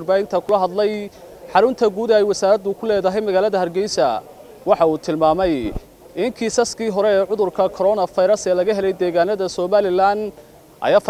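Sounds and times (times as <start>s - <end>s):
man talking into microphone: 0.0s - 11.0s.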